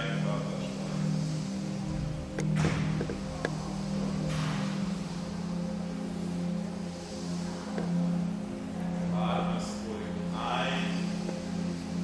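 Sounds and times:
calm relaxation music: 0.0 - 12.0
soft rush of noise: 0.0 - 12.0.

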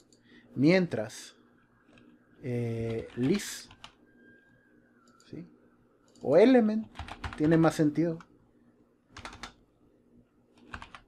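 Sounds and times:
computer keyboard keystrokes: 2.8 - 4.0, 6.1 - 8.3, 9.1 - 9.6, 10.6 - 11.0.

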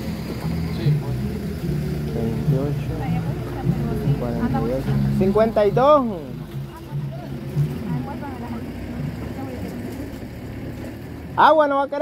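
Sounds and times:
quiet low voices talking: 0.3 - 10.3.

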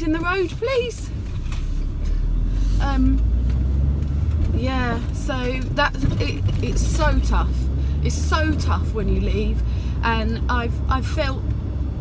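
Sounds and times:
woman speaking: 0.0 - 1.1, 2.8 - 3.2, 4.5 - 11.4
car engine and tyres rumbling: 0.0 - 12.0.

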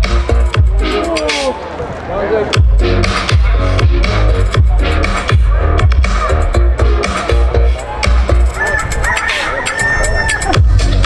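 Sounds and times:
kick drum and bass: 0.0 - 1.0, 2.6 - 8.6, 10.5 - 11.0.

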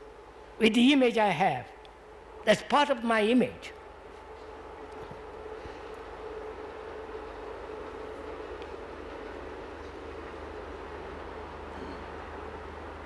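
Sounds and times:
background hum and hiss: 0.0 - 13.0.

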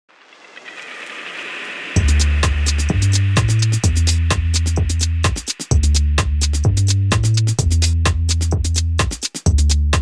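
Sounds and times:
hissing noise swell: 0.1 - 5.7
electronic intro music: 0.1 - 6.6
deep bass hit: 2.0 - 8.8.

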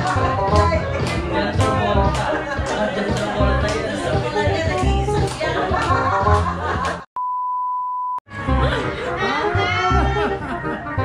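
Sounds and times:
party music: 0.0 - 7.1
electronic beep: 7.2 - 8.2.

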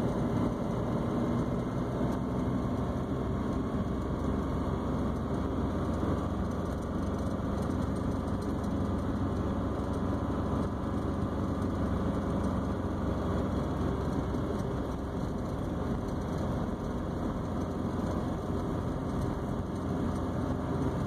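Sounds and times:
car engine and tyres on snow: 0.0 - 21.0.

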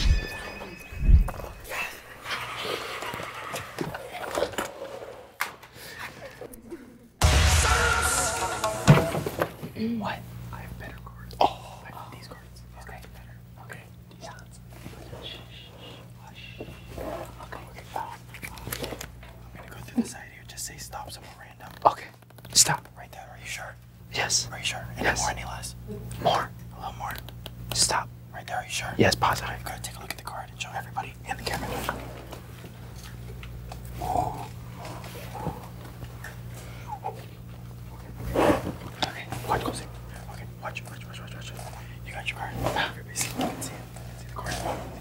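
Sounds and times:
steady low hum: 0.0 - 45.0
people whispering: 9.8 - 18.6, 36.9 - 45.0.

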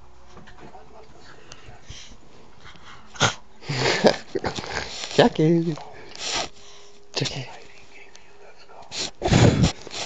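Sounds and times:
dog breathy throaty noise: 8.9 - 10.0.

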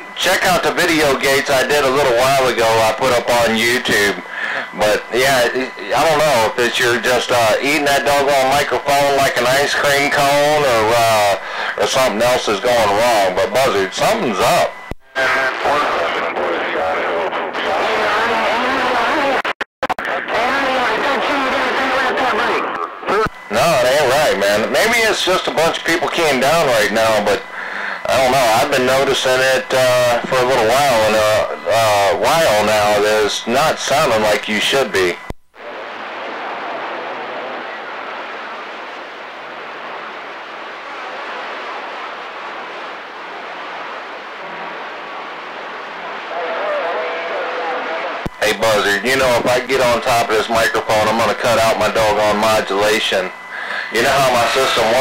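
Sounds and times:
distorted man's voice over radio: 0.0 - 35.3, 46.0 - 55.0
radio click: 14.8 - 15.1, 19.8 - 20.2, 22.6 - 23.4, 35.2 - 35.5, 48.0 - 48.9.

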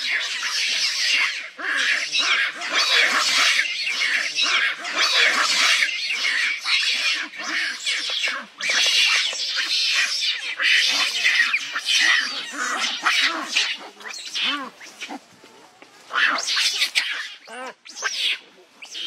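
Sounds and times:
monkeys screaming and squealing: 0.0 - 19.0.

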